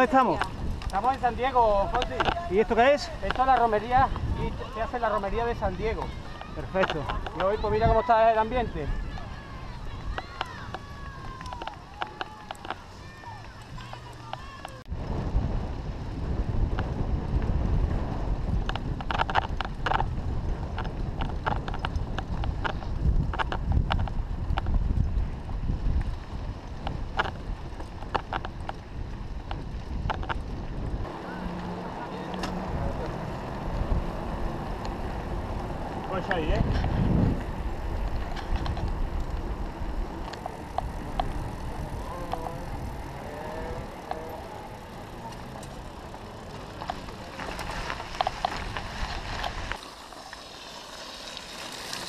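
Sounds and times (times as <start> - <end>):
wind rumble on microphone: 0.0 - 49.8
bike tyres rolling on dirt: 0.0 - 52.0.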